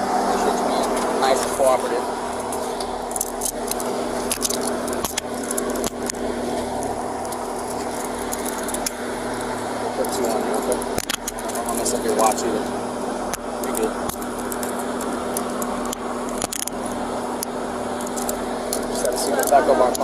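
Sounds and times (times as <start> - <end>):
steady low hum: 0.0 - 20.0
handcuffs ratcheting and clicking: 2.5 - 6.2, 6.8 - 9.0, 10.7 - 12.3, 13.3 - 16.8, 18.0 - 20.0.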